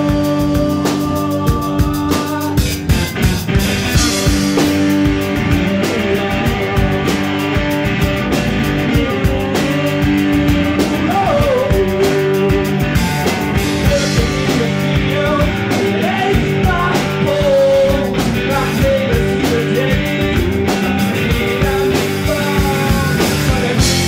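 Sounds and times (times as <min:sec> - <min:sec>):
drum kit beat: 0:00.0 - 0:24.0
electric guitar: 0:00.0 - 0:24.0.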